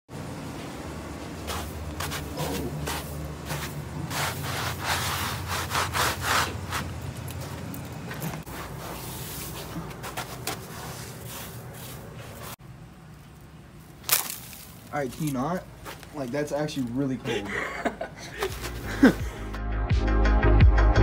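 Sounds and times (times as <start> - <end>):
footsteps crunching in snow: 1.3 - 12.6, 13.9 - 17.2, 18.4 - 19.4
fingertip scraping in snow: 1.5 - 7.0, 8.5 - 12.6.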